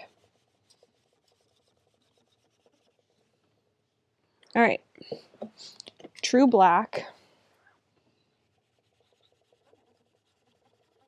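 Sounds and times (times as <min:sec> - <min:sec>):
cotton swab rubbing on paper: 0:00.0 - 0:04.0, 0:08.2 - 0:11.0.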